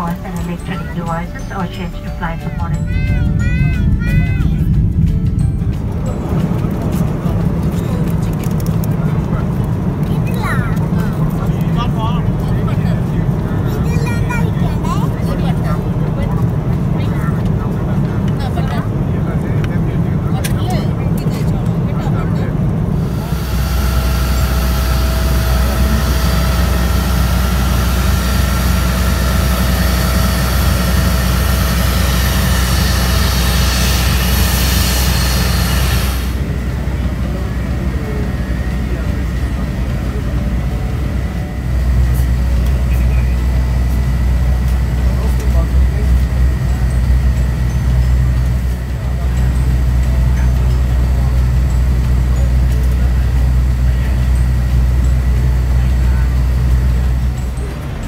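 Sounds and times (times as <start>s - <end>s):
airliner cabin drone: 0.0s - 58.0s
bus engine rumble: 0.0s - 58.0s
parked jet whine and hiss: 3.8s - 58.0s.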